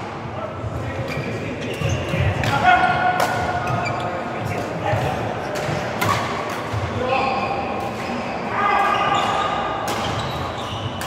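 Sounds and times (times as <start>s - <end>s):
racket hitting shuttlecock: 2.4s - 3.8s.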